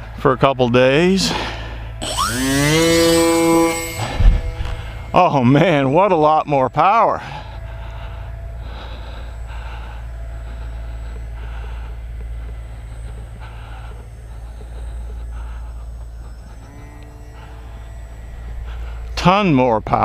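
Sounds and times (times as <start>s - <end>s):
model plane motor buzzing: 1.3s - 20.0s.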